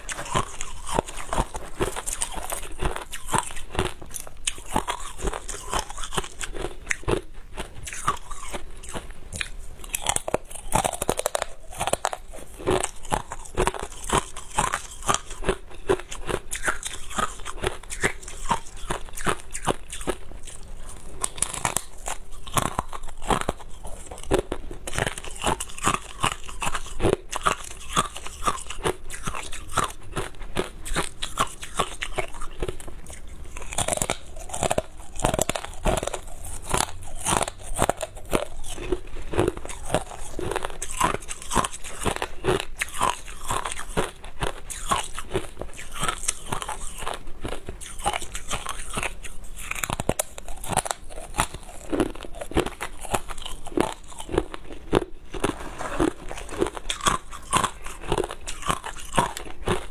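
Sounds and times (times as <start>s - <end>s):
ice crunching between teeth: 0.0s - 59.9s.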